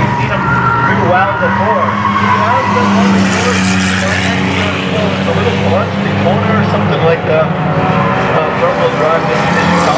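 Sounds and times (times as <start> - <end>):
race cars droning on track: 0.0 - 9.9
car passing close by: 0.6 - 9.9.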